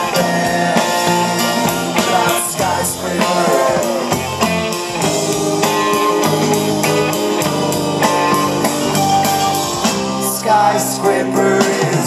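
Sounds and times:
electric guitar with bent notes: 0:00.0 - 0:12.0
rock band playing: 0:00.0 - 0:12.0.

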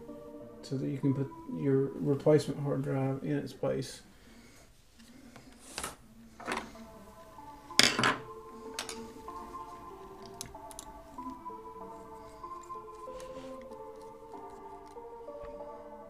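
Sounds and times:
soft music with held notes: 0:00.0 - 0:16.0.

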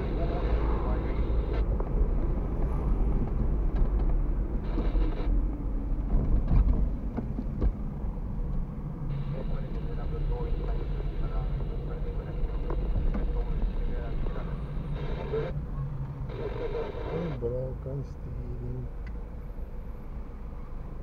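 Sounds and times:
car engine and tyres rumble: 0:00.0 - 0:21.0.

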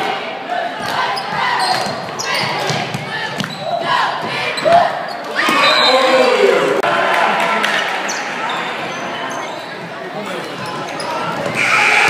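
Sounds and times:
crowd chatter: 0:00.0 - 0:12.0
sneaker squeaks: 0:00.8 - 0:06.0, 0:08.1 - 0:12.0.

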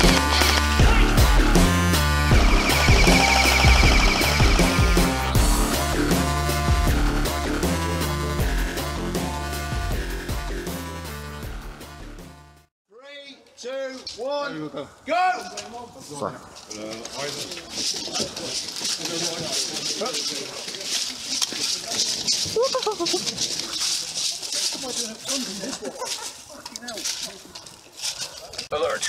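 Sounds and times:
footsteps: 0:15.4 - 0:28.9
people laughing: 0:22.3 - 0:23.9, 0:25.3 - 0:26.8.

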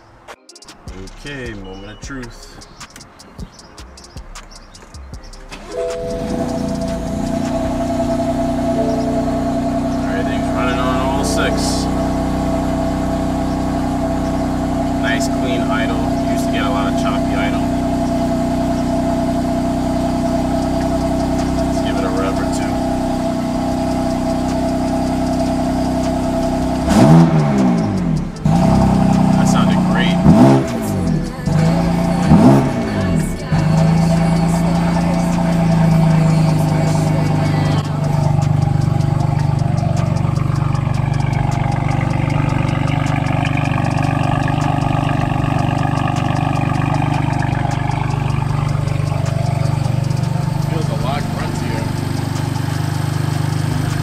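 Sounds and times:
car engine idling: 0:00.9 - 0:54.0
engine revving: 0:05.4 - 0:54.0.

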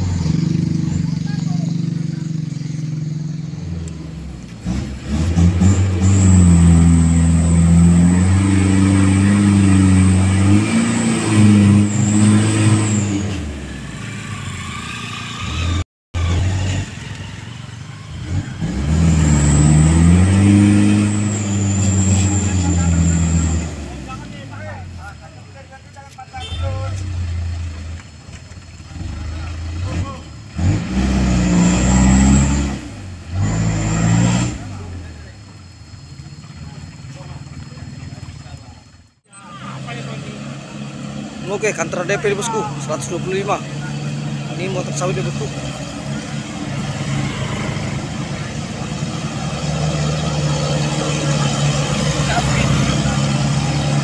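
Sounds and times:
diesel truck engine revving: 0:00.0 - 0:25.8, 0:26.4 - 0:54.0.

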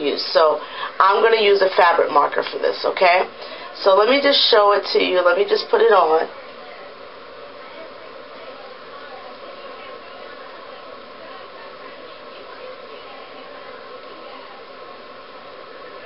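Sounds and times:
faint hum: 0:00.0 - 0:16.0
steady background hiss: 0:00.0 - 0:16.0.

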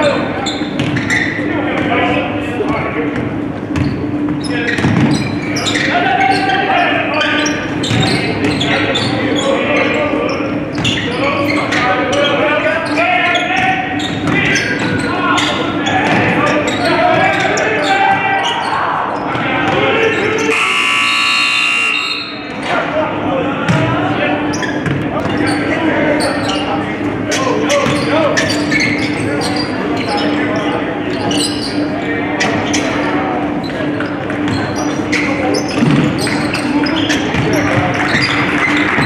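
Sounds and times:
voices of players and spectators: 0:00.0 - 0:39.0
buzzer: 0:20.4 - 0:22.4.

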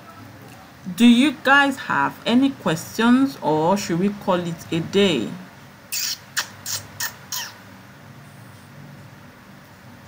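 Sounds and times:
faint low hum: 0:00.0 - 0:10.0
bird squawking: 0:05.9 - 0:07.6.

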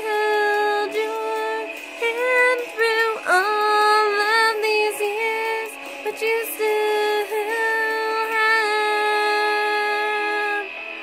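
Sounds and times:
karaoke backing music: 0:00.0 - 0:11.0.

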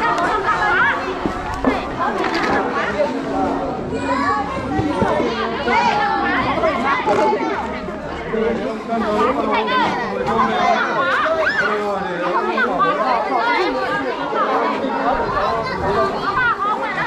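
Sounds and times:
children's voices: 0:00.0 - 0:17.0
many voices chattering: 0:00.0 - 0:17.0.

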